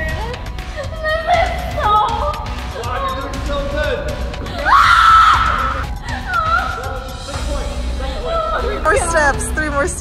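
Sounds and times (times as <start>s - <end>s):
background music: 0.0s - 10.0s
woman screaming: 4.6s - 7.0s.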